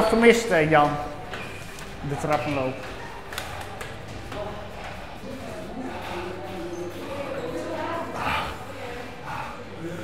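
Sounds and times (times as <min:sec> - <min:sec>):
footsteps on metal staircase: 0:00.0 - 0:07.3
faint voices: 0:00.0 - 0:10.0.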